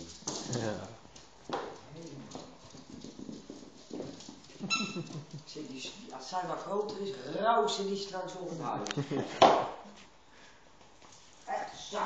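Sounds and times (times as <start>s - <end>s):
dogs playing: 0.0s - 7.0s
claws clicking on hard floor: 0.0s - 7.1s.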